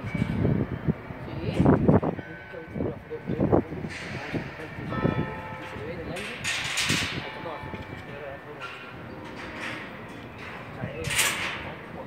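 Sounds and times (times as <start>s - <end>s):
people talking in background: 0.9s - 12.0s.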